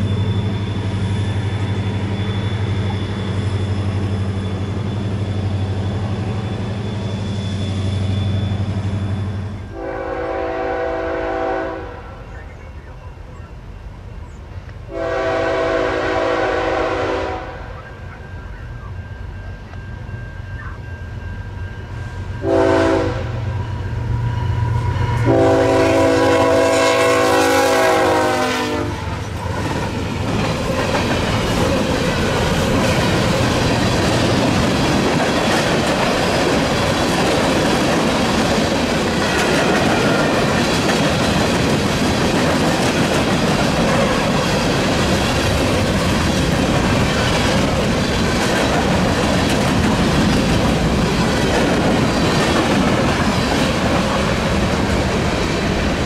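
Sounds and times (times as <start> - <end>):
locomotive air horn blasts: 9.7 - 12.2, 14.9 - 17.8, 22.4 - 23.5, 24.7 - 29.2.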